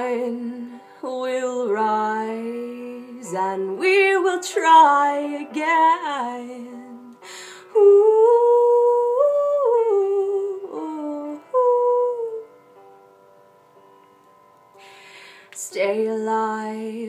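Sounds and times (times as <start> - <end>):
faint instrumental backing: 0.0 - 17.0
woman breathing in: 7.2 - 7.8, 14.7 - 15.6.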